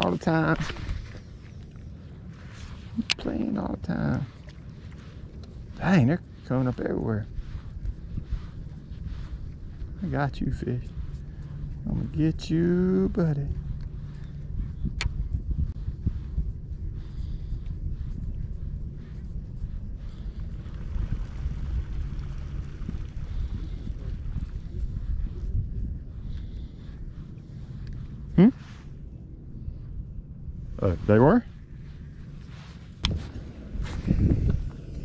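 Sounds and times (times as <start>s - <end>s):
low rumble: 0.0s - 35.0s.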